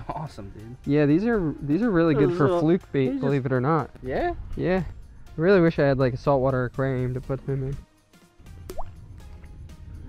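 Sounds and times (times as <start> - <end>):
faint background music: 0.0 - 10.0
low wind rumble: 3.9 - 7.2, 8.5 - 10.0
small plop into water: 8.7 - 9.0.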